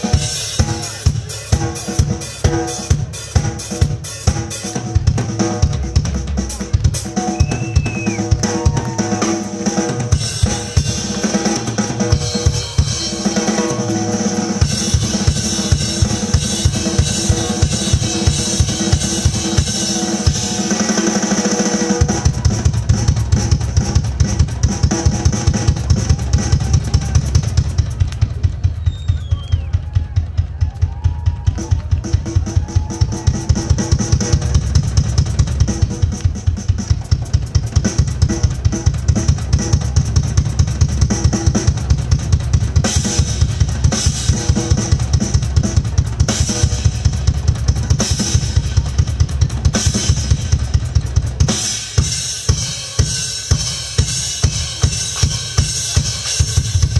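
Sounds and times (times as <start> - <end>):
drum kit solo: 0.0 - 56.9
rapid bass drum strokes: 0.0 - 56.9.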